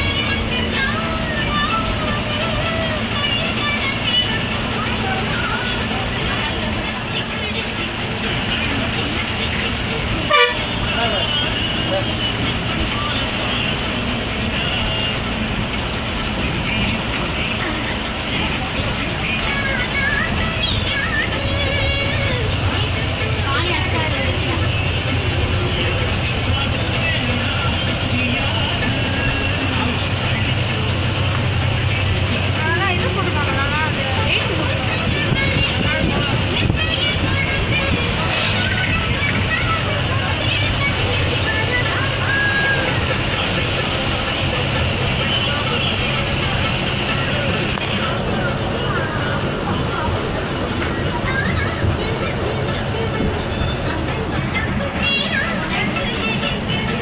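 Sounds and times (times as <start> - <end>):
background voices: 0.0 - 57.0
bus engine and road noise: 0.0 - 57.0
horn toots: 10.2 - 12.0.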